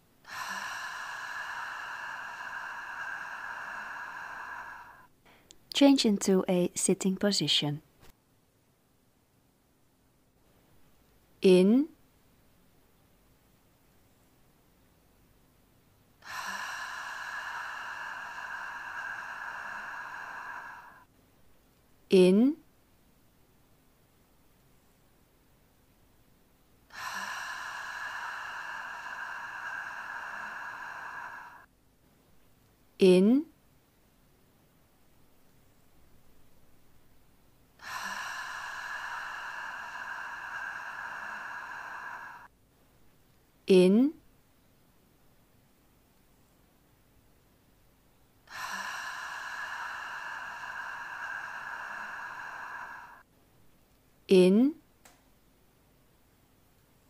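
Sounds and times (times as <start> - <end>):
woman exhaling through lips: 0.3 - 5.4, 16.2 - 21.1, 26.9 - 31.7, 37.8 - 42.5, 48.5 - 53.3.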